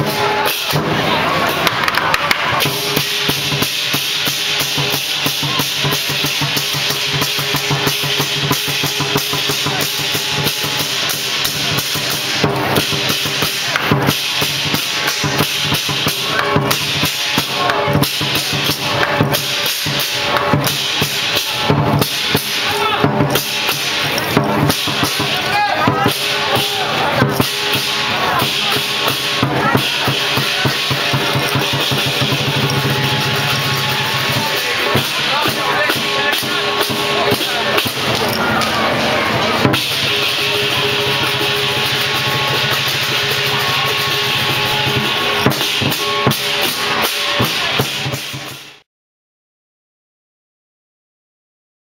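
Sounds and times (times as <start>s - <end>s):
cymbals clashing: 0.0s - 48.8s
drum beating fast rhythm: 0.0s - 48.8s.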